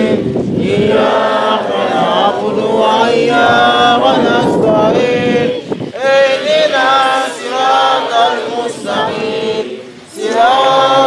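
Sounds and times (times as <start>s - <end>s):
group chanting in unison: 0.0s - 11.0s.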